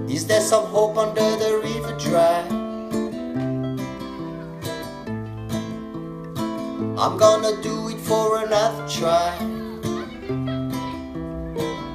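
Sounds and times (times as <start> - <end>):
acoustic guitar strumming chords: 0.0 - 11.9.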